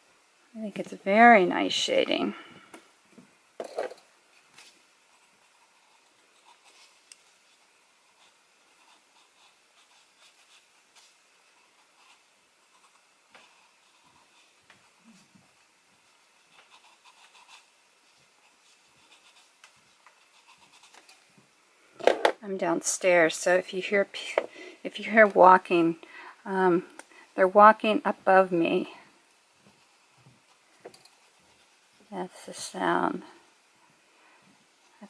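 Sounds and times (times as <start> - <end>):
pencil scratching on paper: 8.0 - 10.9, 16.5 - 17.7, 18.4 - 19.6, 20.2 - 21.1.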